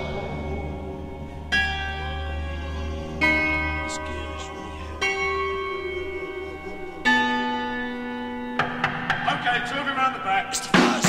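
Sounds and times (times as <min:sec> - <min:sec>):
large bell ringing: 0:00.0 - 0:10.8.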